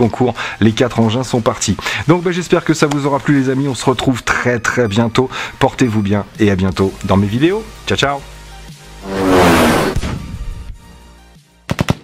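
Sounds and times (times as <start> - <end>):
loud whoosh: 9.0 - 10.2.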